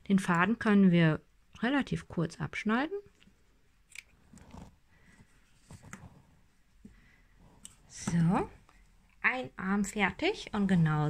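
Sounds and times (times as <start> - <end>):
soft handling of yarn: 3.1 - 9.3.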